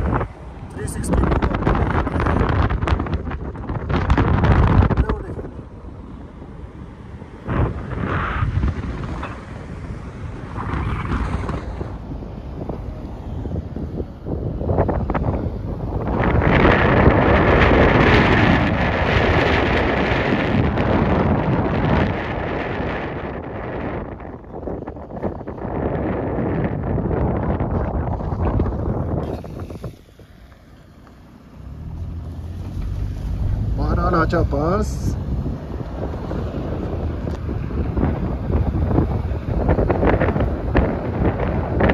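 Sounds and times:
wind buffeting microphone: 0:00.0 - 0:41.9.

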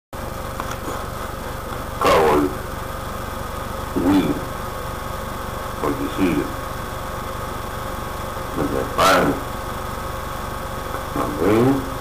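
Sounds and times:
low pulsing motor hum: 0:00.2 - 0:12.0.

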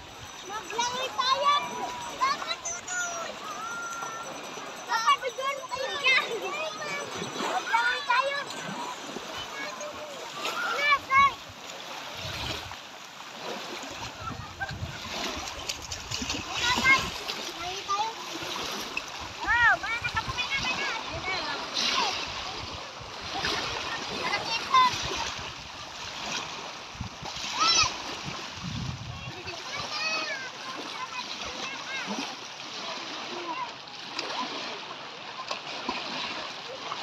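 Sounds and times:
sea water splashing: 0:00.0 - 0:37.0
people calling out: 0:00.4 - 0:11.4.

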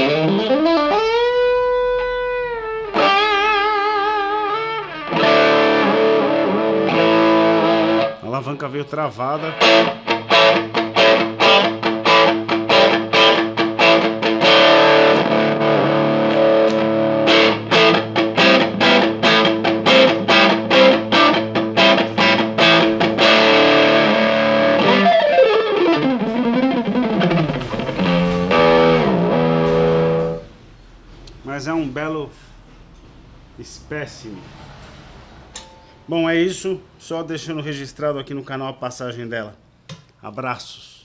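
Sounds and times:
electric guitar playing: 0:00.0 - 0:08.2, 0:09.4 - 0:31.4.

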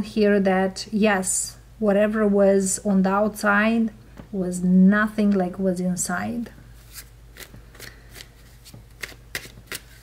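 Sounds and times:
cards being shuffled: 0:06.8 - 0:10.0.

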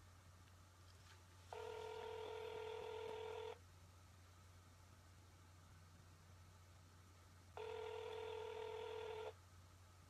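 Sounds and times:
telephone ringback tone: 0:01.5 - 0:03.6, 0:07.6 - 0:09.4.

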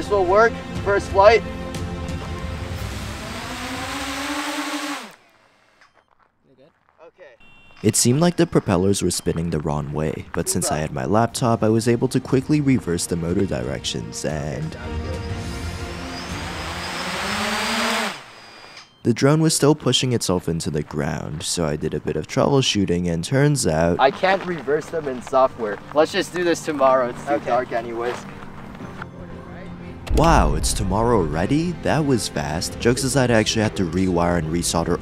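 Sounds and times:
drone motors whining: 0:02.0 - 0:06.0, 0:15.1 - 0:18.9
drone motors spinning: 0:02.6 - 0:05.8.

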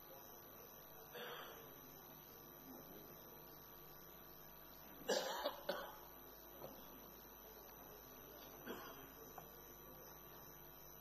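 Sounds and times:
person coughing: 0:05.1 - 0:06.0, 0:08.6 - 0:09.1.

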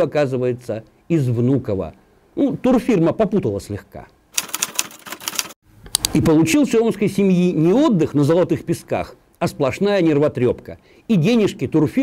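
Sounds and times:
rapid keyboard key clicks: 0:04.4 - 0:06.1.

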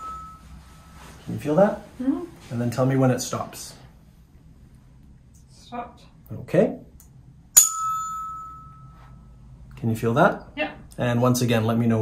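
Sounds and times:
tuning fork strike: 0:00.0 - 0:01.0, 0:07.6 - 0:09.4
tuning fork ringing tone: 0:00.0 - 0:01.1, 0:07.6 - 0:09.4.

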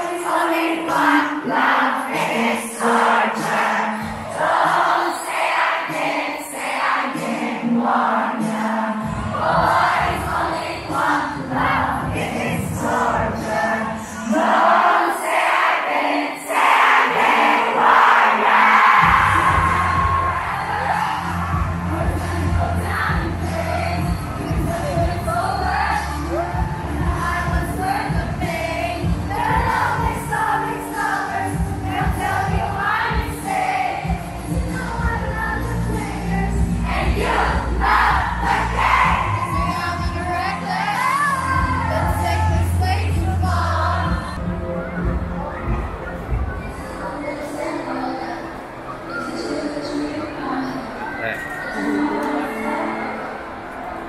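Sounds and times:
crowd singing and yelling: 0:00.0 - 0:54.0
pop music over sound system: 0:00.0 - 0:54.0.

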